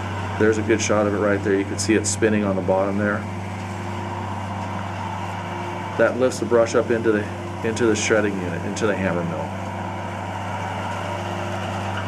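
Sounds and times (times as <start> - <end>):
mulcher engine droning: 0.0 - 12.0
wood being shredded: 0.0 - 12.0.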